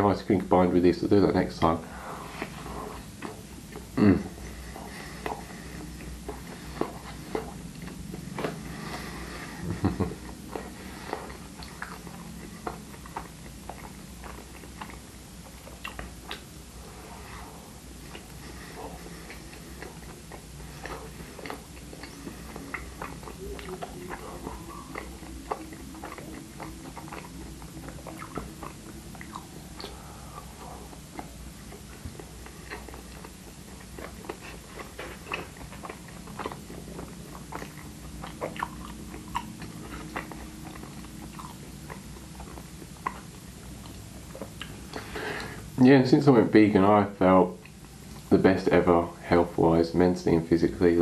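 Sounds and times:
person chewing food: 1.6 - 45.8, 47.5 - 48.3.

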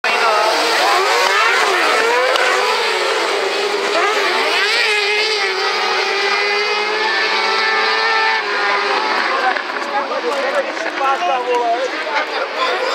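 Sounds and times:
buggy engines revving: 0.0 - 12.9.

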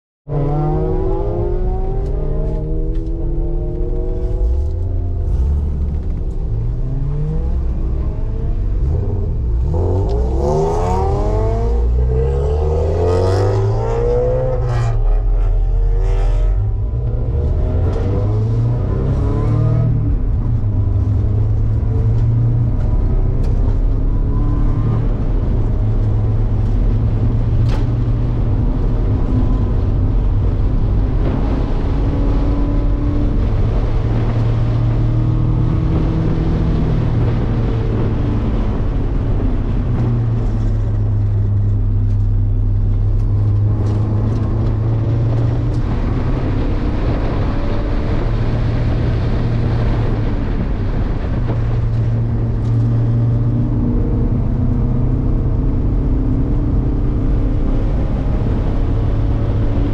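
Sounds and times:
road and wind noise: 0.2 - 59.9
race car engine revving: 0.3 - 59.9.

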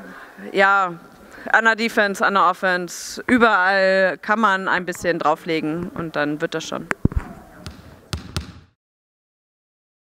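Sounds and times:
basketball bouncing in a hall: 7.1 - 8.8.

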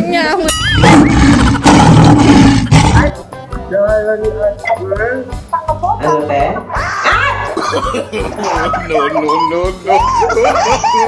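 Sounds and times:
background music: 0.0 - 11.0
loud roar sound effect: 0.8 - 3.1.

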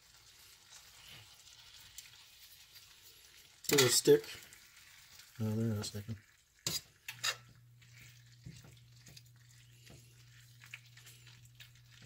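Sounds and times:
bacon sizzling: 0.0 - 12.0
metal tongs clicking on skillet: 3.7 - 4.1.

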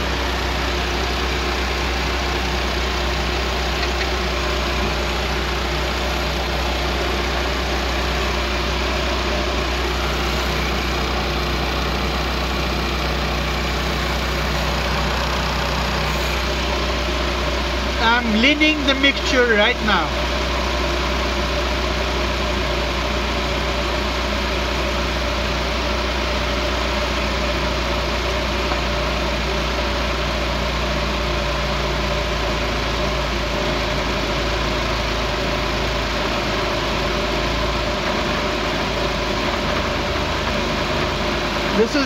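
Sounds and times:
car engine idling: 0.0 - 42.0.

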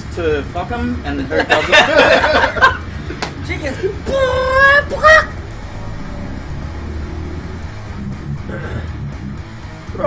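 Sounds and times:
background music: 0.0 - 10.0
man shouting: 3.8 - 5.4.

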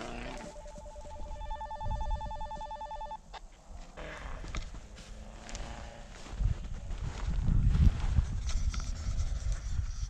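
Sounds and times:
wind buffeting microphone: 6.1 - 10.0.

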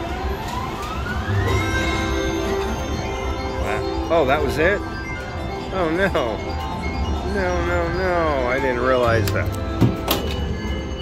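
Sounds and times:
casino machine tones and hum: 0.0 - 11.0
slot machine rising tone: 0.4 - 11.0.

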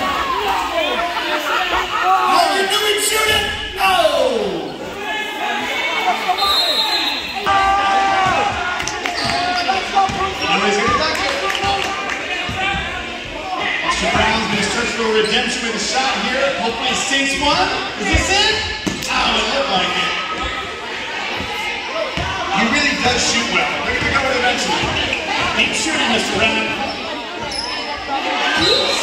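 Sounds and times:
spectators chattering: 0.0 - 29.0.

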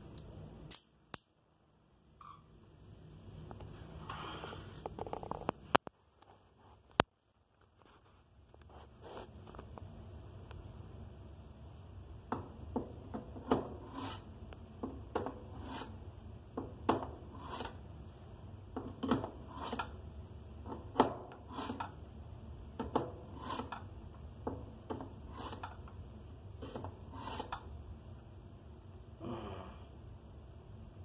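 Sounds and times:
knife blade scraping a sharpener: 13.9 - 14.3, 15.6 - 16.0, 21.5 - 21.9, 23.4 - 23.8.

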